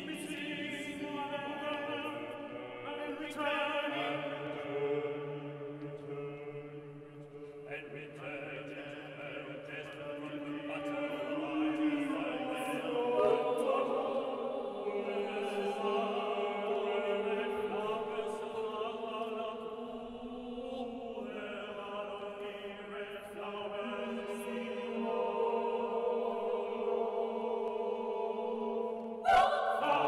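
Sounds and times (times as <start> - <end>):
vocal ensemble singing chords: 0.0 - 30.0.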